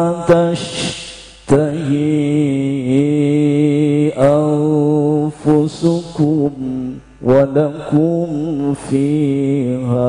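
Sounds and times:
man reciting melodically: 0.0s - 10.0s
short breath: 0.7s - 1.5s.

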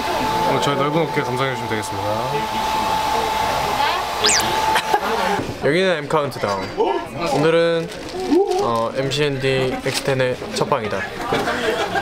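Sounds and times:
whistle-like gliding tone: 4.2s - 4.6s.

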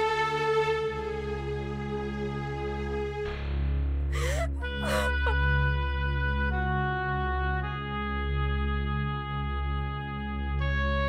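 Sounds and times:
background music with low drone: 0.0s - 11.0s
woman sobbing: 4.2s - 5.6s.

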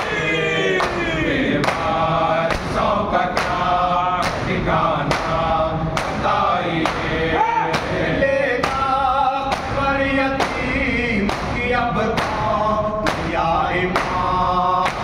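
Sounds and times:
lead reciter on a microphone: 0.0s - 15.0s
men chanting in unison: 0.0s - 15.0s
rhythmic hand strikes on chest: 0.0s - 15.0s.

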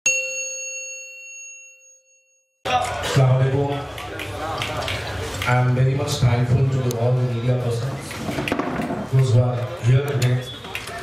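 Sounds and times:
bell ding: 0.0s - 2.7s.

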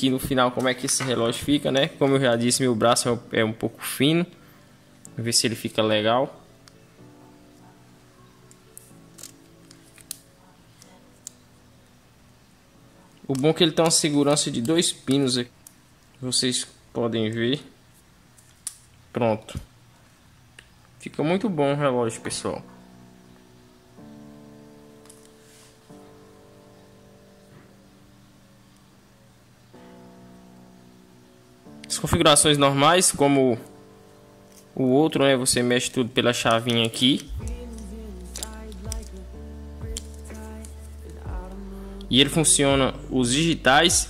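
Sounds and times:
quiet background music: 0.0s - 44.0s.

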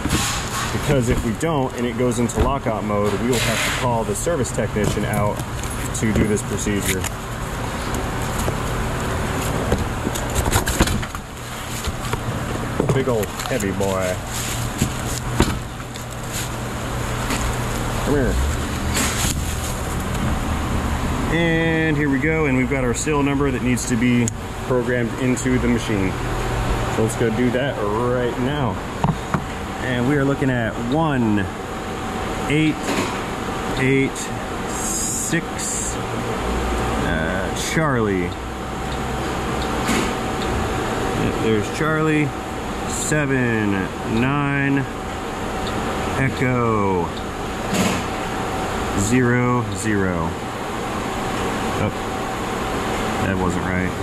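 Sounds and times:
machine hum: 0.0s - 54.0s.

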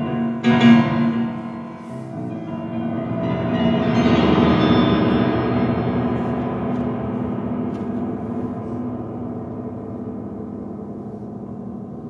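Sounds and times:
piano sustained ringing tones: 0.0s - 12.0s.

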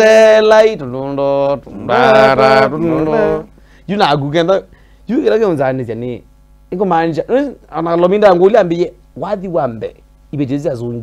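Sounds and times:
man singing unaccompanied: 0.0s - 3.6s.

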